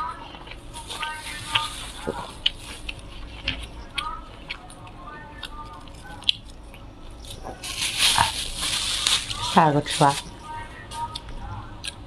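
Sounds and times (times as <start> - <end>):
plastic gloves crinkling: 0.5 - 4.6, 5.8 - 11.4.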